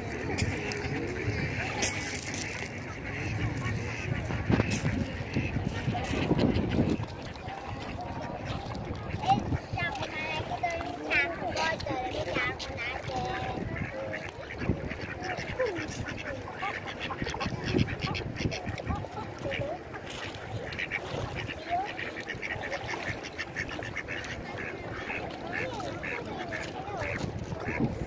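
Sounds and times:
ducks quacking: 0.0s - 28.0s
water: 0.0s - 28.0s.

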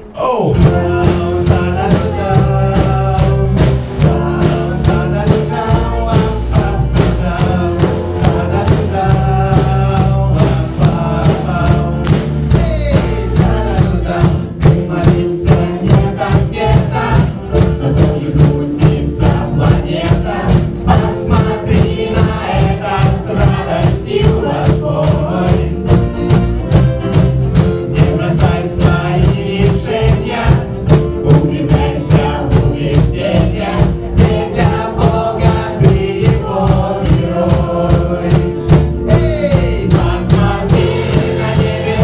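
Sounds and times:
bass guitar: 0.0s - 42.0s
steady drum beat: 0.0s - 42.0s.

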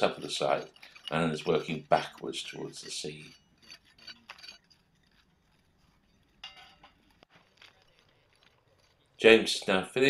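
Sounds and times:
trowels clinking on stone: 0.0s - 8.4s.

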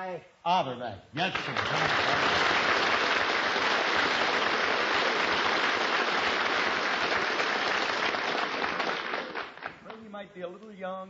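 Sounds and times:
audience applauding: 1.2s - 10.1s.

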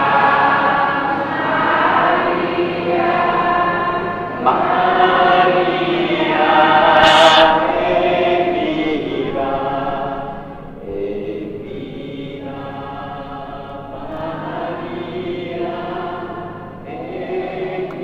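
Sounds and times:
choir singing a hymn: 0.0s - 18.0s.

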